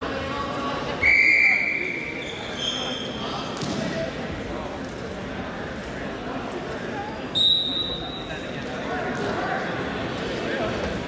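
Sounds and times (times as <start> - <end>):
short high-pitched whistle: 1.0 - 2.1.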